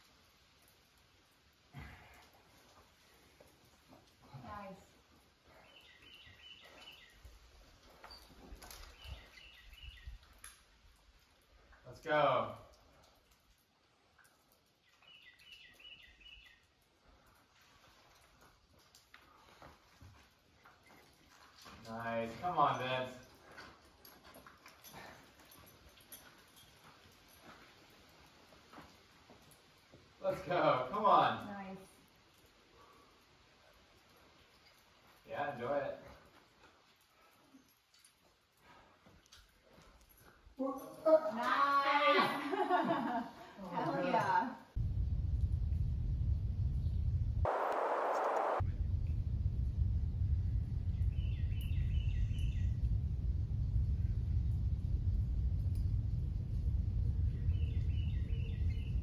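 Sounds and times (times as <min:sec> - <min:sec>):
bird chirping: 0:05.6 - 0:07.4, 0:08.0 - 0:10.4, 0:14.8 - 0:16.7, 0:50.8 - 0:53.0, 0:57.2 - 0:59.0
wind rumble on microphone: 0:44.8 - 0:59.0.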